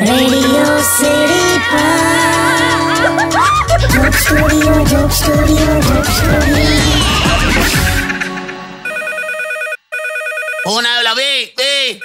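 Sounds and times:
electronic telephone ringer trilling: 0:08.8 - 0:10.8.

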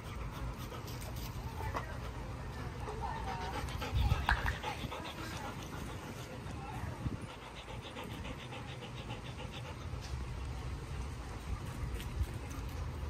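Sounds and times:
low rumble of outdoor air: 0:00.0 - 0:13.0.

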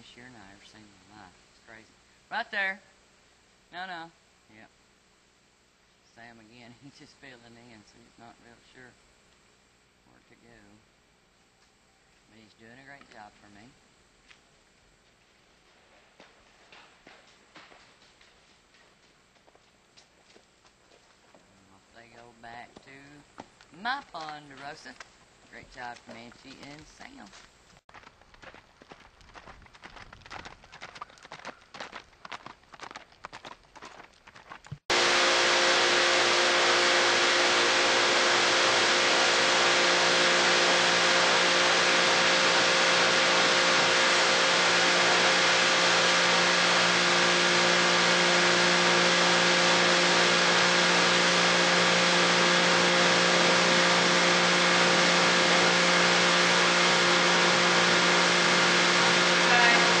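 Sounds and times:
horse hoofbeats on dirt: 0:27.9 - 0:34.8
pressure washer spraying: 0:34.9 - 1:00.0.

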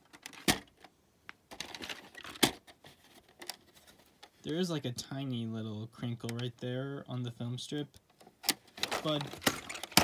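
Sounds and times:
plastic cassette clicks and rattles: 0:00.0 - 0:04.3, 0:08.0 - 0:10.0.

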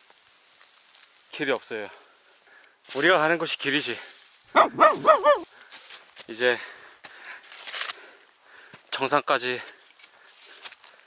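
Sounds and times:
person giving high calls: 0:04.6 - 0:05.5.

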